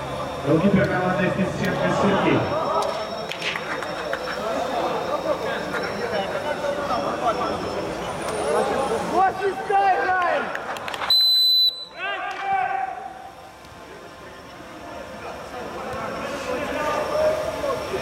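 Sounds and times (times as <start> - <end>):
referee's whistle blast: 11.1 - 12.0.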